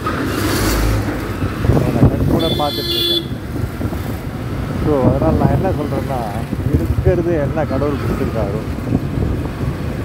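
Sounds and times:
city street traffic rumble: 0:00.0 - 0:10.0
vehicle horn: 0:02.4 - 0:03.4.

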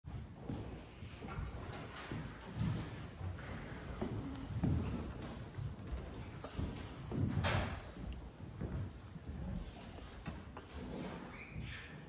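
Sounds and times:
footsteps on wooden floor: 0:00.1 - 0:11.7.

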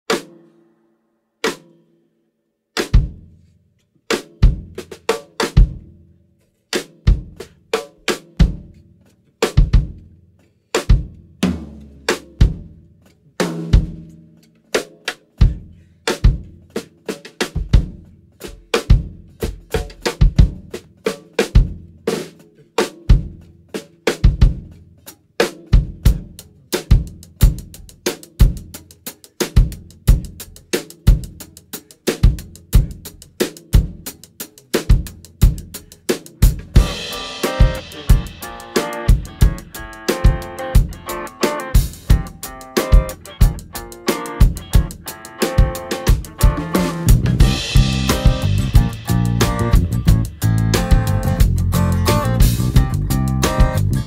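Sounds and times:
drum kit playing: 0:00.1 - 0:00.5, 0:01.4 - 0:01.8, 0:02.8 - 0:03.3, 0:04.1 - 0:06.0, 0:06.7 - 0:08.8, 0:09.4 - 0:10.1, 0:10.8 - 0:54.0
low bass notes: 0:46.2 - 0:54.0.

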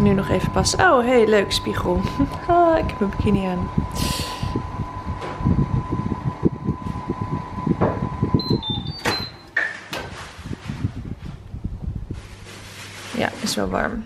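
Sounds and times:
oven tone gliding down: 0:00.0 - 0:09.6
oven door opening: 0:07.7 - 0:11.1
short electronic beeps: 0:08.4 - 0:09.5.

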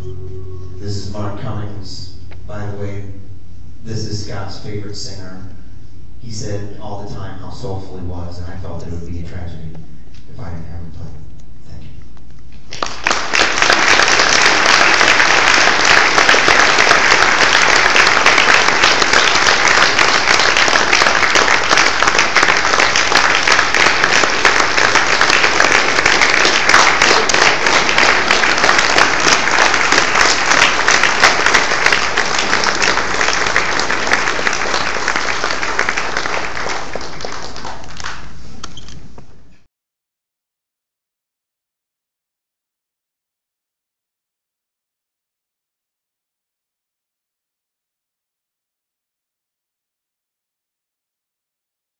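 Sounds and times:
crowd applauding: 0:12.7 - 0:38.4.

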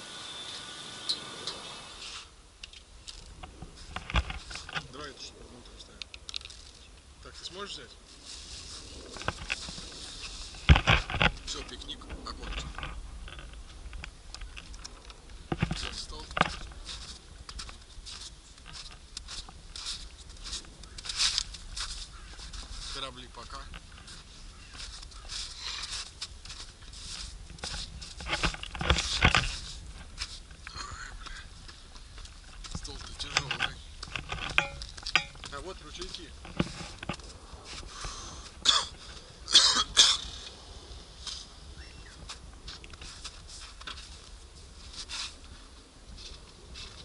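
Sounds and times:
footsteps crunching in snow: 0:06.4 - 0:14.0, 0:15.2 - 0:30.6, 0:31.4 - 0:39.3, 0:40.6 - 0:47.0
person coughing: 0:38.6 - 0:40.3.

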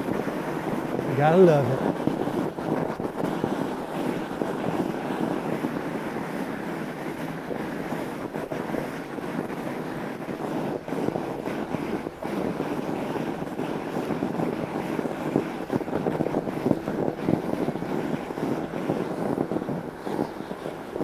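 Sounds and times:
wind on microphone: 0:00.0 - 0:21.0.

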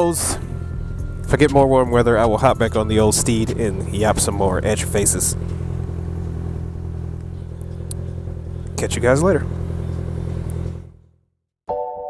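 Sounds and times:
motorcycle engine running: 0:00.0 - 0:11.2.

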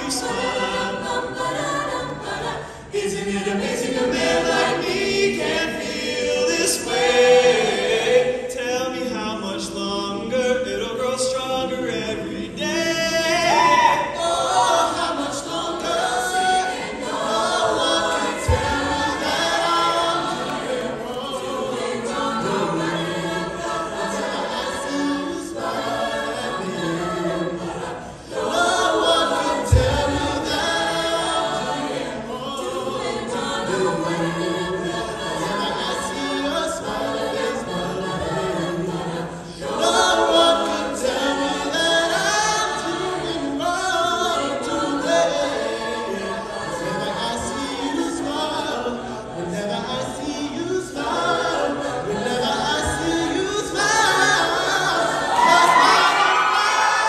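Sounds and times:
choir singing in harmony: 0:00.0 - 0:57.0.

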